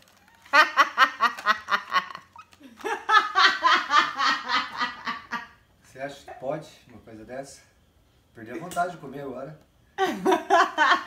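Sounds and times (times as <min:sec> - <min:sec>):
woman laughing: 0:00.4 - 0:05.5, 0:10.0 - 0:11.0.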